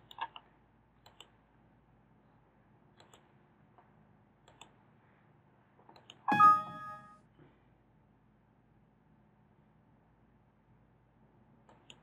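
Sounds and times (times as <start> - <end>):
mouse clicks: 1.0 - 1.3, 3.0 - 3.3, 4.5 - 4.8, 5.9 - 6.5
system warning chime: 6.3 - 7.2.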